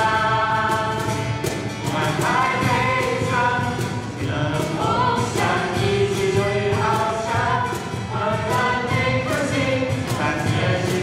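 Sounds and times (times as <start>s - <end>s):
acoustic guitar strumming: 0.0s - 11.0s
group singing: 0.0s - 11.0s.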